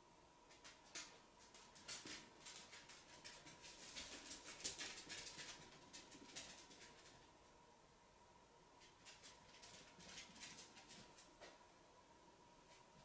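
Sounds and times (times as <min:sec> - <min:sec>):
faint steady high hum: 0:00.0 - 0:13.0
small clicks and rustles of hands: 0:00.5 - 0:07.3, 0:08.8 - 0:11.7.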